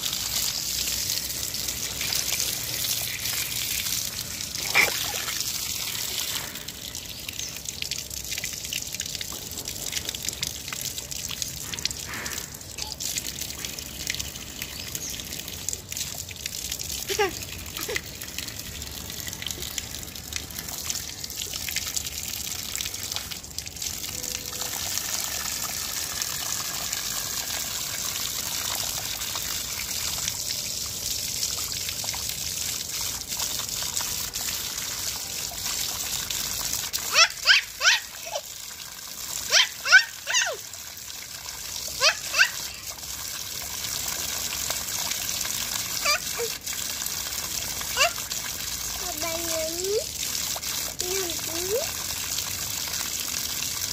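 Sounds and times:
water splashing on stone: 0.0s - 24.0s, 31.5s - 53.9s.

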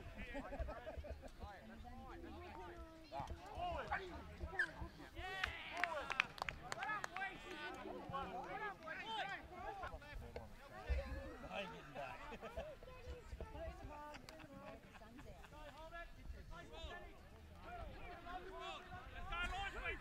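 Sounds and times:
people calling and shouting: 0.0s - 20.0s.

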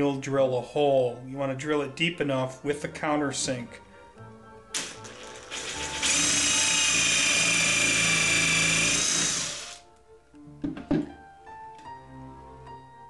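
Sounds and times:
cordless drill whining: 4.8s - 9.8s.

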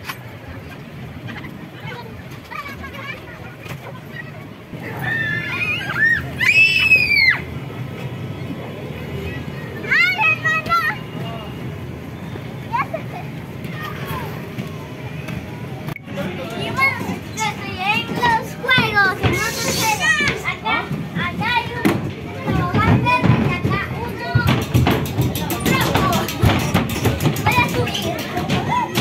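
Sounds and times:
children chattering and calling: 0.0s - 29.0s
child screaming: 4.8s - 7.5s.

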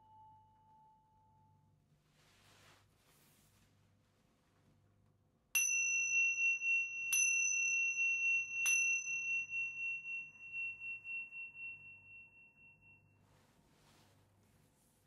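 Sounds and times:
small cymbals ringing: 5.6s - 13.2s.

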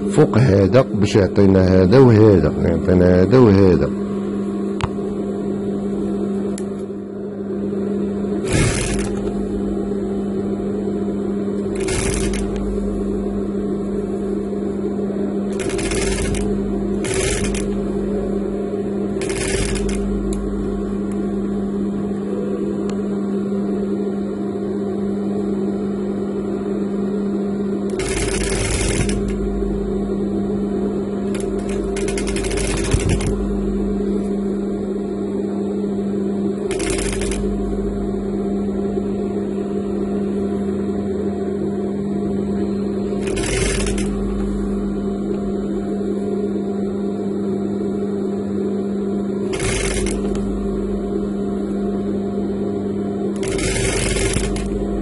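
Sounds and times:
sewing machine needle running: 8.4s - 9.3s, 11.8s - 12.7s, 15.5s - 17.8s, 19.2s - 20.1s, 27.9s - 29.4s, 31.3s - 33.4s, 36.7s - 37.5s, 43.2s - 44.2s, 49.5s - 50.5s, 53.4s - 54.8s
sewing machine motor humming: 8.4s - 9.6s, 11.6s - 13.0s, 15.5s - 18.3s, 19.1s - 20.9s, 27.9s - 29.5s, 31.2s - 33.5s, 36.7s - 37.7s, 43.2s - 44.5s, 49.4s - 50.6s, 53.4s - 55.0s.

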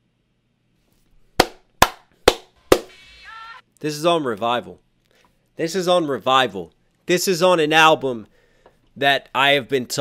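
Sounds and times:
sharp hand claps: 1.4s - 2.9s.

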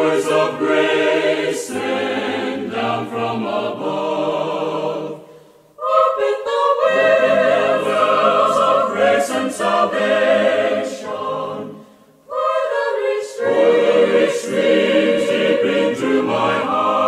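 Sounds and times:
choir singing a hymn: 0.0s - 17.0s.

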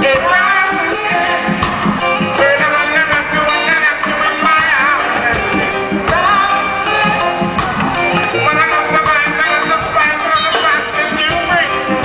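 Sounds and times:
live reggae band: 0.0s - 12.0s.

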